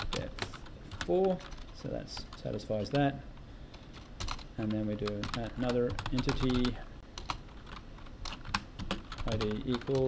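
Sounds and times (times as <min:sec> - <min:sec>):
keyboard typing: 0:00.0 - 0:03.1, 0:03.7 - 0:10.0.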